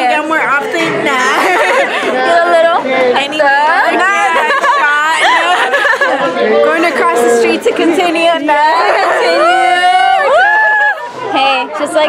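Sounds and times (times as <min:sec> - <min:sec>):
women laughing and chattering: 0:00.0 - 0:12.0.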